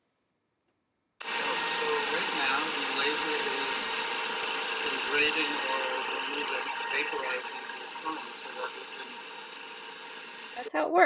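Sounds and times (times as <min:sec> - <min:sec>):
laser engraver rushing noise: 0:01.2 - 0:10.7.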